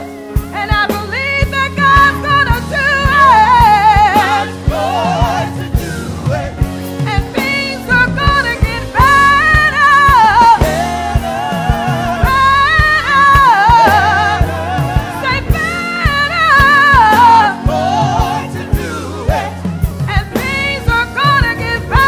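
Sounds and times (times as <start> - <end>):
bass line: 0.0 - 22.0
drum kit beat: 0.0 - 22.0
lead singer: 0.0 - 22.0
backing singers: 2.4 - 22.0.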